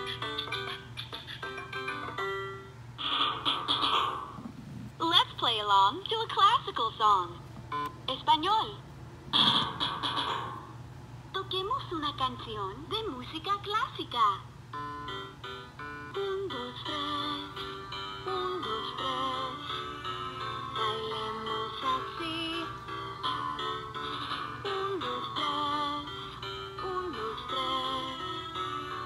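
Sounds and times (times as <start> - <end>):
electronic toy melody: 0.0 - 4.4, 7.7 - 8.2, 14.7 - 29.0.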